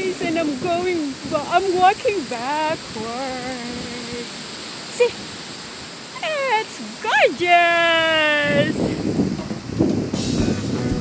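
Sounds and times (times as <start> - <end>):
woman making wordless vocal sounds: 0.0 - 4.3.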